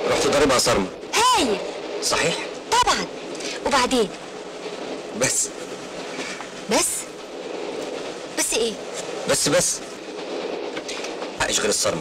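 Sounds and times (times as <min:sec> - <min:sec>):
passenger train running: 0:00.0 - 0:12.0.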